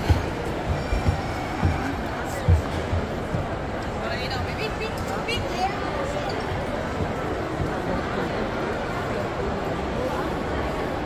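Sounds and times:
soft low thumps: 0:00.0 - 0:03.8
busy shopping mall noise: 0:00.0 - 0:11.0.

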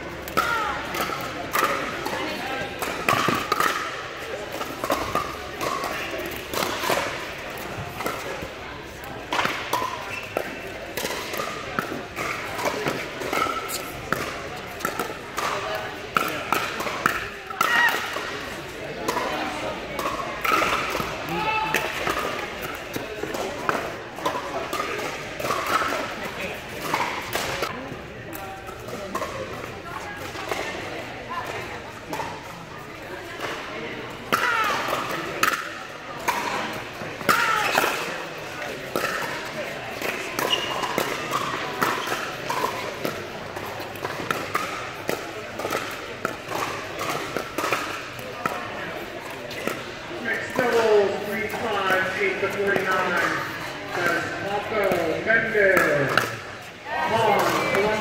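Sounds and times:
players' voices and chatter: 0:00.0 - 0:58.0.

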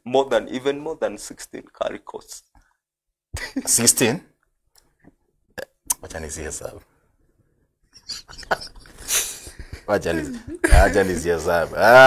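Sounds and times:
men stifled laughter: 0:07.9 - 0:11.2.

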